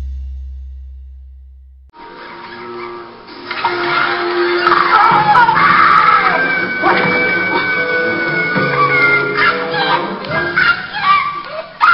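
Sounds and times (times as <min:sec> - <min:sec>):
film music: 0:00.0 - 0:11.5
voices: 0:02.2 - 0:11.9.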